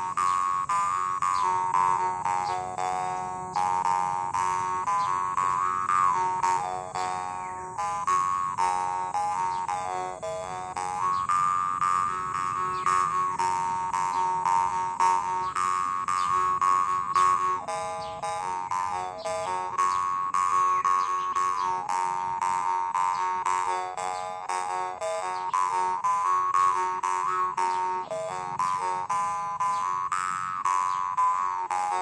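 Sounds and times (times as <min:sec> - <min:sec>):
jaw harp playing: 0:00.0 - 0:32.0.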